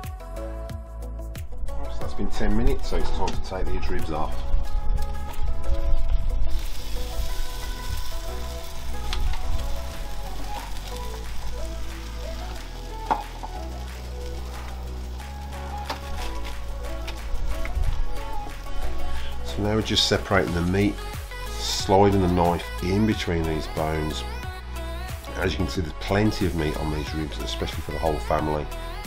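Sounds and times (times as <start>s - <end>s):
background music: 0.0s - 29.0s
ribs sizzling on a grill: 5.2s - 29.0s.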